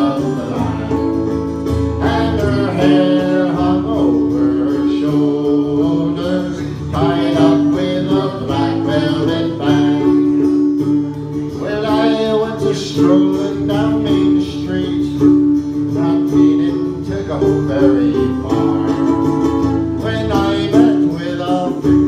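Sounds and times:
man singing into microphone: 0.0 - 1.3, 2.0 - 10.7, 11.5 - 22.0
strummed acoustic guitar: 0.0 - 22.0.

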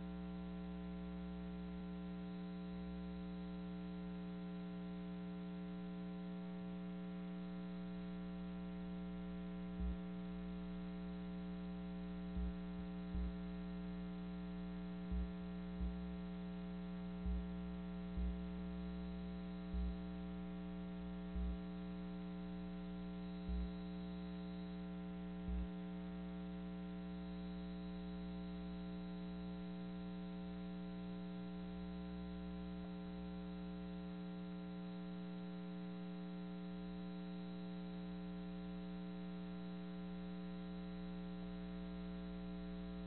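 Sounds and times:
buzzing mains hum: 0.0 - 43.0
short low thumps: 9.8 - 10.1, 12.3 - 13.7, 14.9 - 16.5, 17.1 - 20.4, 21.2 - 21.8, 23.5 - 23.8.

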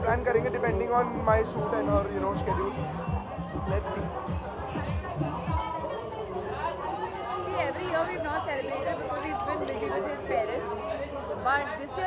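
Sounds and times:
overlapping chatter of people: 0.0 - 12.0.

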